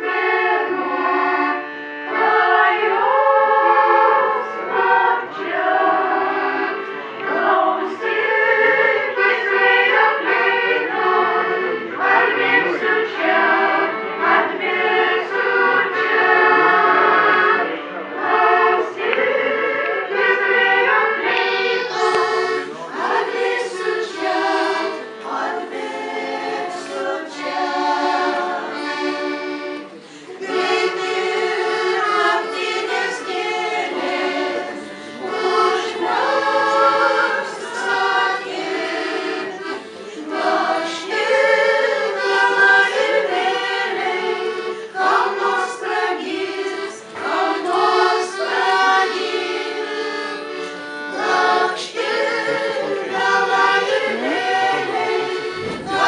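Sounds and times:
piano accordion: 0:00.0 - 0:56.0
women's vocal ensemble singing: 0:00.0 - 0:56.0.

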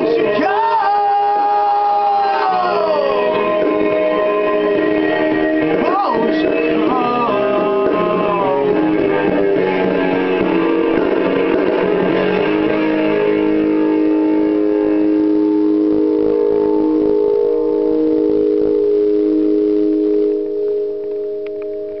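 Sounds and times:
electric guitar sustained chord: 0:00.0 - 0:22.0
small clicks: 0:20.6 - 0:22.0.

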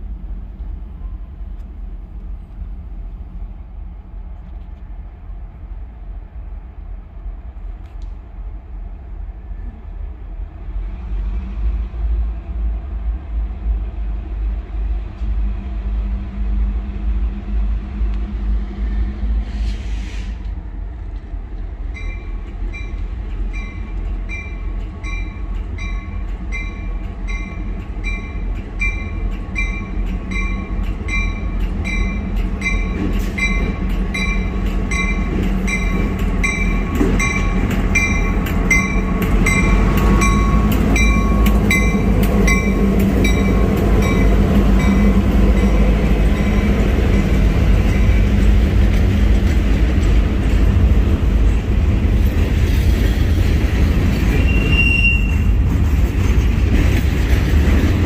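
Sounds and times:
diesel locomotive engine rumble: 0:00.0 - 0:58.0
train wheels clicking over rail joints: 0:19.4 - 0:58.0
locomotive bell ringing: 0:22.0 - 0:48.3.

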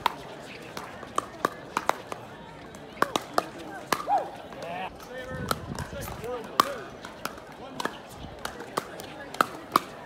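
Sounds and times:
paddles hitting plastic ball: 0:00.0 - 0:10.0.

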